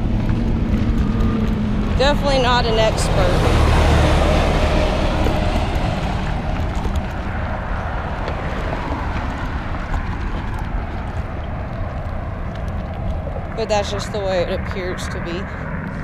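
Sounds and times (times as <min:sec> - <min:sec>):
steady low rumble: 0:00.0 - 0:16.0
truck passing close by: 0:00.0 - 0:16.0.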